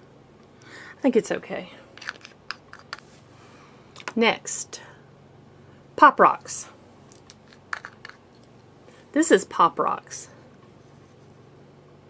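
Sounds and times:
plastic pot clicks and scrapes: 0:02.0 - 0:03.1, 0:07.5 - 0:08.2.

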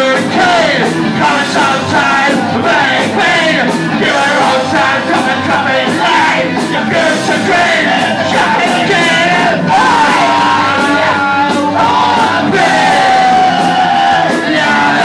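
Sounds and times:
punk rock band playing: 0:00.0 - 0:15.0
shouted vocals: 0:00.0 - 0:15.0.

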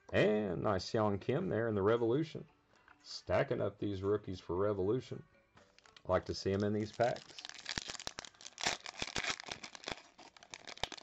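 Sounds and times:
wrapper ripping: 0:05.8 - 0:06.0, 0:06.6 - 0:11.0
foil wrapper crackling: 0:05.8 - 0:11.0.

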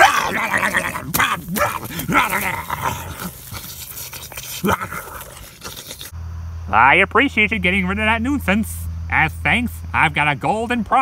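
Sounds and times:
person growling and snarling: 0:00.0 - 0:06.1.

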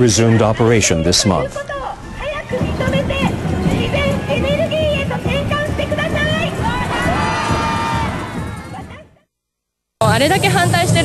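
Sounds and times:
crowd shouting and chanting: 0:00.0 - 0:09.2.

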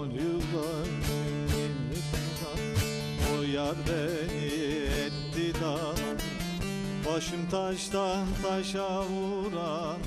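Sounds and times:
long-necked lute picked: 0:00.0 - 0:10.0
man singing: 0:00.0 - 0:10.0.

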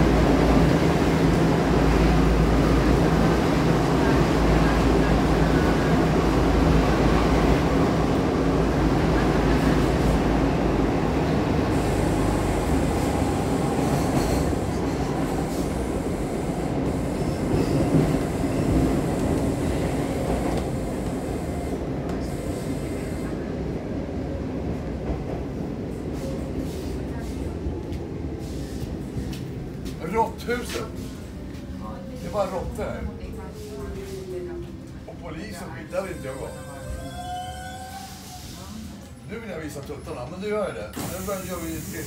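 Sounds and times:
train rumbling in tunnel: 0:00.0 - 0:42.0.

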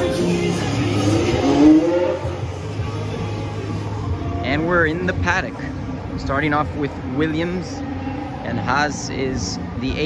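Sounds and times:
car accelerating: 0:00.0 - 0:03.0
racing car engines droning: 0:00.0 - 0:10.0.

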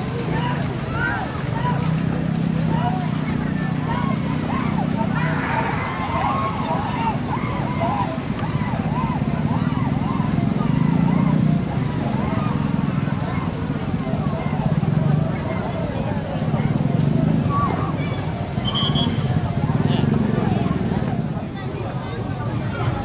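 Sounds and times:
crowd talking and shouting: 0:00.0 - 0:23.0.

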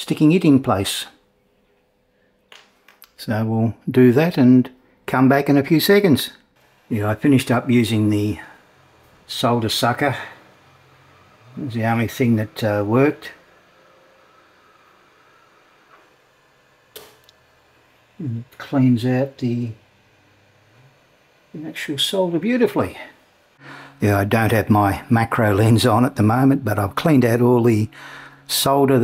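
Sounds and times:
spoken phrases: 0:00.0 - 0:01.2, 0:03.2 - 0:08.6, 0:09.3 - 0:10.4, 0:11.5 - 0:13.4, 0:18.2 - 0:19.8, 0:21.5 - 0:23.2, 0:24.0 - 0:29.0
solder sucker snapping: 0:16.9 - 0:17.4.

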